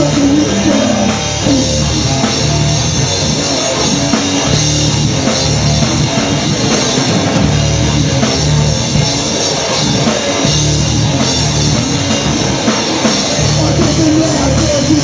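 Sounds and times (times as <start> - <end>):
punk band playing live: 0.0 - 15.0.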